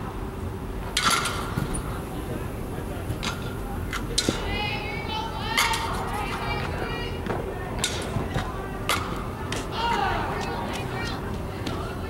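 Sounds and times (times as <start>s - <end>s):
girls calling out: 4.4s - 7.2s, 9.5s - 12.0s.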